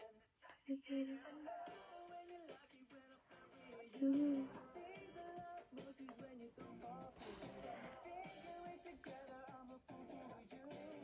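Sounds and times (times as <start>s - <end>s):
pop song with sung vocal: 0.0s - 11.0s.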